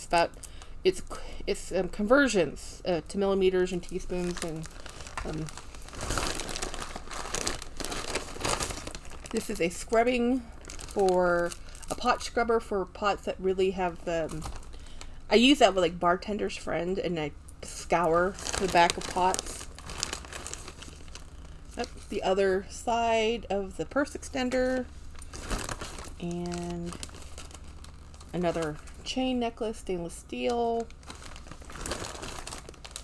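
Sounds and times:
plastic bag crinkling: 0:03.4 - 0:12.6, 0:14.2 - 0:15.6, 0:17.7 - 0:22.4, 0:24.0 - 0:29.8, 0:30.4 - 0:33.0.

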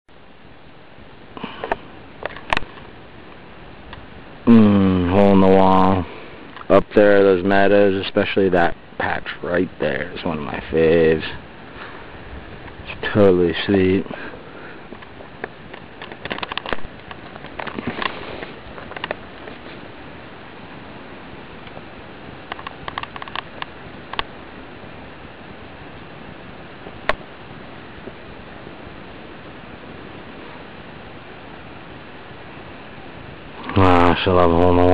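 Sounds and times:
steady hiss: 0:00.1 - 0:34.9
camera handling clicks and rustling: 0:15.0 - 0:19.6, 0:22.5 - 0:24.3.

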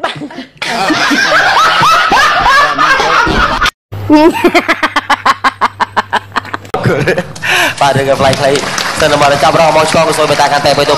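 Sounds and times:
people laughing hard: 0:00.0 - 0:07.7.

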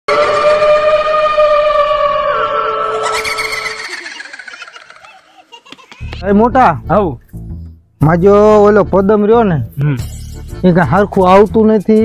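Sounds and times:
eerie wailing tone: 0:00.1 - 0:05.1.

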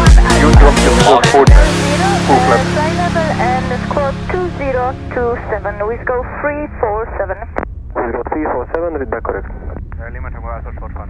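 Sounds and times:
music playing: 0:00.0 - 0:07.4
voices over a radio: 0:00.3 - 0:11.0
light aircraft engine drone: 0:04.4 - 0:11.0.

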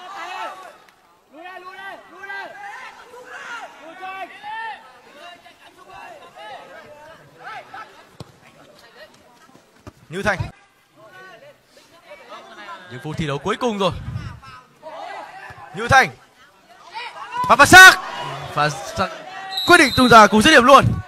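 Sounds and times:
men shouting and calling: 0:00.0 - 0:08.1, 0:10.2 - 0:21.0.

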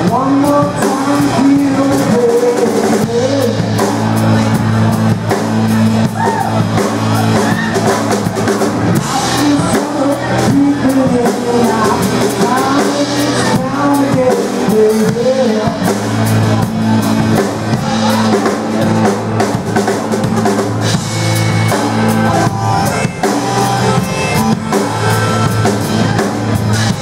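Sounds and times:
drum kit beat: 0:00.0 - 0:27.0.

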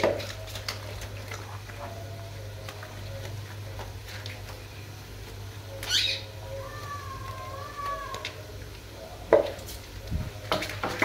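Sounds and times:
water splashing: 0:00.0 - 0:04.8.

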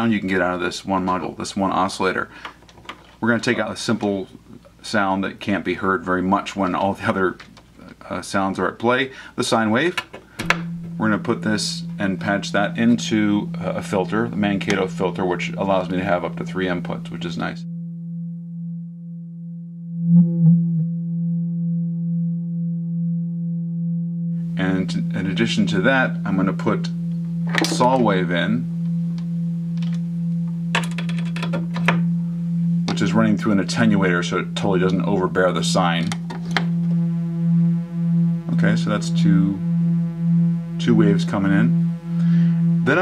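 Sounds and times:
steady low synthesizer tone: 0:10.4 - 0:43.0
buzzy saw wave: 0:10.5 - 0:17.7, 0:24.4 - 0:43.0.

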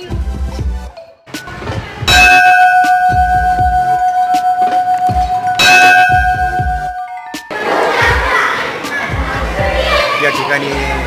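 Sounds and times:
brass bell ringing: 0:02.1 - 0:07.5.

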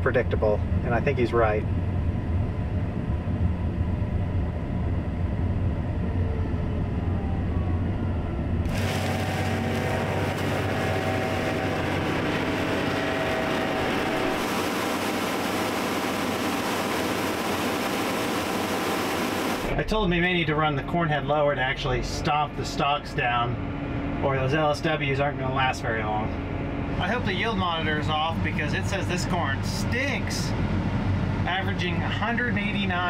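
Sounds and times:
diesel engine rumble: 0:00.0 - 0:33.0
faint steady whine: 0:00.0 - 0:33.0
combine harvesting rushing noise: 0:07.8 - 0:33.0.

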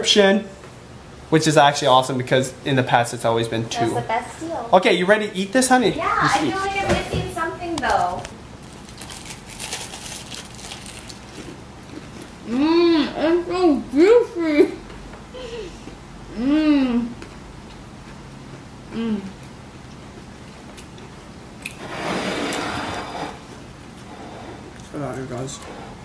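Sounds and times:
people chewing crusty bread: 0:08.6 - 0:12.6.

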